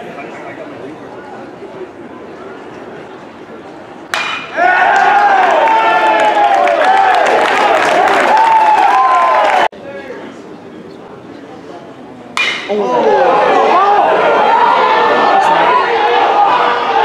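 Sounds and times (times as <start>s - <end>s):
metal bat hitting ball: 4.1s - 4.6s, 12.4s - 12.8s
crowd shouting and yelling: 4.1s - 10.4s, 12.4s - 17.0s.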